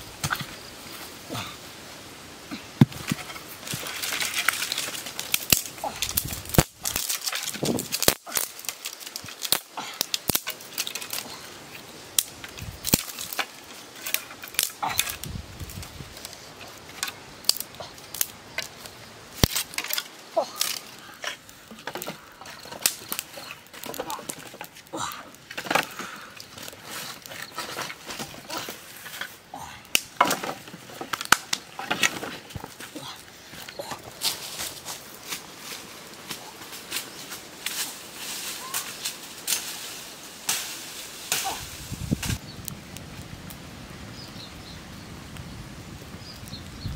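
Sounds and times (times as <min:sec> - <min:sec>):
sticks knocking and clattering: 0:02.8 - 0:11.5, 0:12.2 - 0:35.4.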